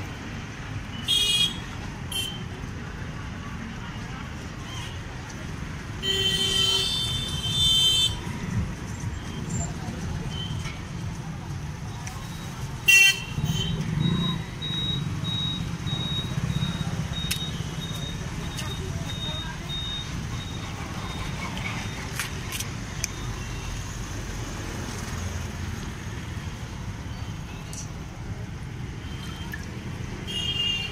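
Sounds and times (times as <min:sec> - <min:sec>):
rumble of passing vehicles: 0:00.0 - 0:30.9
faint high beeping: 0:14.1 - 0:21.4.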